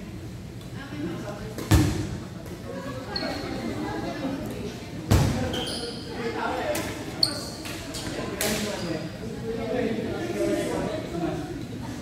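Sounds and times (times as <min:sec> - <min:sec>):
faint voices chattering: 0:00.0 - 0:12.0
shoes squeaking on court floor: 0:05.4 - 0:06.2, 0:07.1 - 0:09.0.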